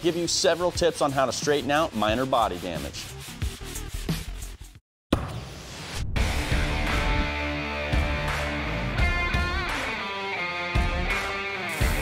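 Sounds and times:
hand pad rubbing on metal: 0:00.0 - 0:04.8
music: 0:00.0 - 0:12.0.

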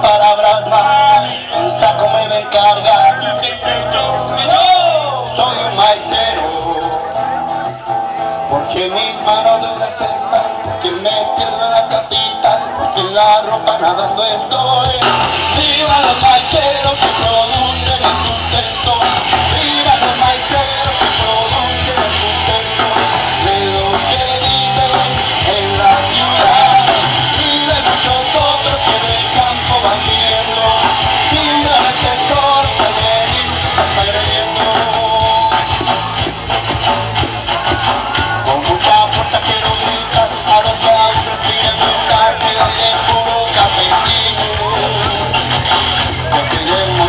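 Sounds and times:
live ska-punk band playing: 0:00.0 - 0:47.0.

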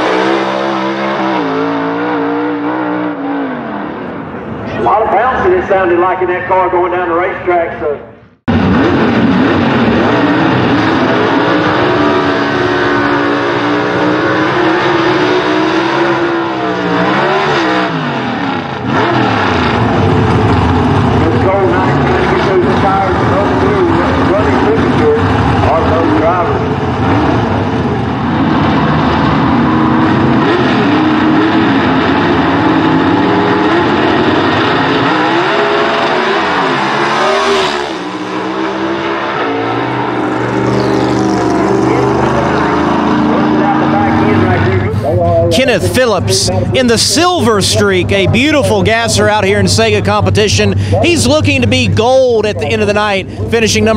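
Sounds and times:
drag car engines running loud: 0:00.0 - 0:53.9.

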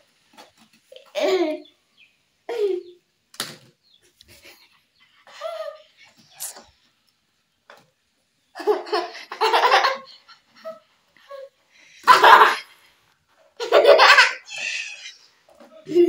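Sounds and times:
children laughing: 0:04.2 - 0:06.3, 0:08.6 - 0:12.8, 0:13.6 - 0:16.0.

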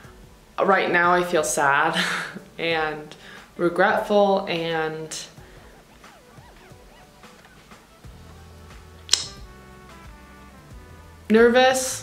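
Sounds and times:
soft background music: 0:00.0 - 0:12.0
sharp click: 0:09.1 - 0:09.4.

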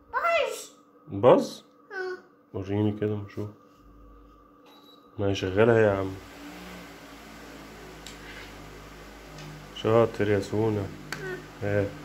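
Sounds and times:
electric fan running: 0:00.0 - 0:12.0.

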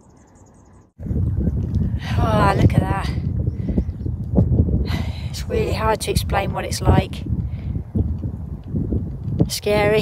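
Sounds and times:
wind buffeting microphone: 0:01.0 - 0:10.0.

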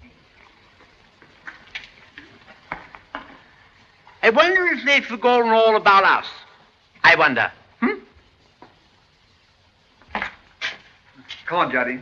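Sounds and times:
old film soundtrack hiss: 0:00.0 - 0:12.0.

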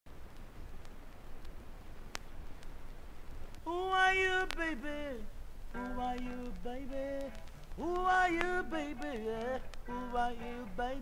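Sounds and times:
record surface hiss: 0:00.1 - 0:11.0
sharp click: 0:05.7 - 0:10.7.

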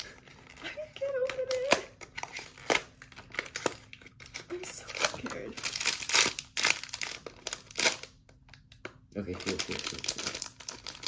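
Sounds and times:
packaging crinkling and tearing: 0:00.0 - 0:11.0.

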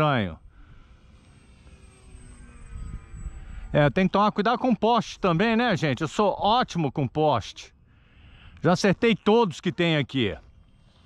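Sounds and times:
model airplane motor whine: 0:00.0 - 0:06.4, 0:07.5 - 0:11.0.

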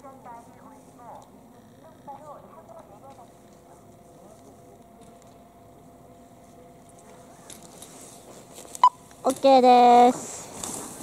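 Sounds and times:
skis carving on snow: 0:10.1 - 0:11.0.

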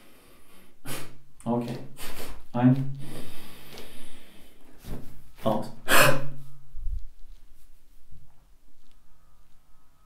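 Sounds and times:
man's forceful exhale: 0:05.9 - 0:06.3.

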